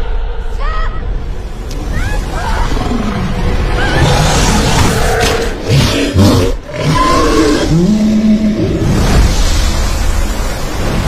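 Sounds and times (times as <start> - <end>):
monster roaring: 2.7 - 9.1.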